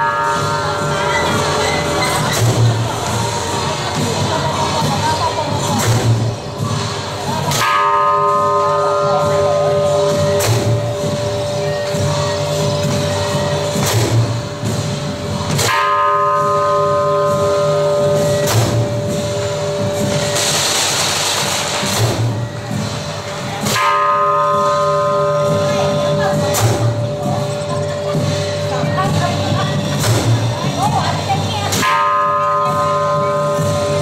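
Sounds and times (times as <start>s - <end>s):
large temple bell ringing: 0.0s - 3.7s, 6.1s - 20.6s, 22.2s - 34.0s
sharp strikes: 5.7s - 34.0s.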